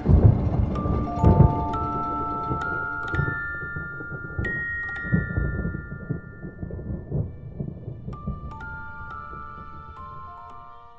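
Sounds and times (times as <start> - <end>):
low thunder-like rumble: 0.0 - 10.5
high chime tones: 0.0 - 10.9.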